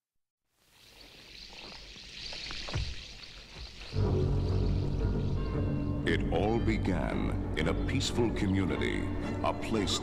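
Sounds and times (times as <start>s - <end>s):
low sustained music chord: 4.0s - 10.0s.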